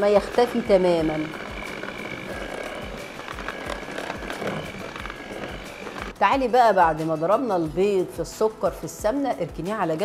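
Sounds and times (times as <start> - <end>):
electric hand mixer whirring: 0.0 - 6.2.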